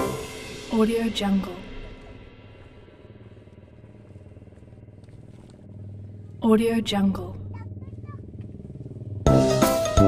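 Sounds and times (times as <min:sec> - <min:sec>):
faint low engine hum: 0:00.1 - 0:10.0.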